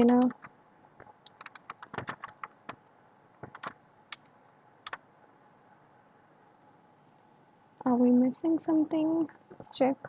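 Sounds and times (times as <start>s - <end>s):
typing on computer keyboard: 0.0s - 2.8s, 3.4s - 5.0s.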